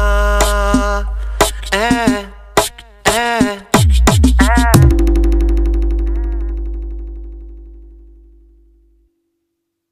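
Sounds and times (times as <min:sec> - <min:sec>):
deep bass note: 0:04.4 - 0:09.0
held synth tone: 0:04.8 - 0:08.7.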